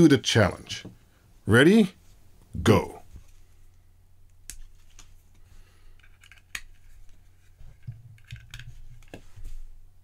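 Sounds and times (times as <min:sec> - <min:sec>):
plastic parts being handled: 0:04.5 - 0:09.6
plastic connectors clicking: 0:06.0 - 0:06.7.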